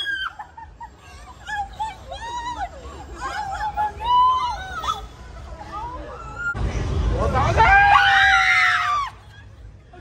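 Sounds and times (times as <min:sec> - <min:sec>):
young women screaming: 0:00.0 - 0:00.7, 0:07.6 - 0:09.4.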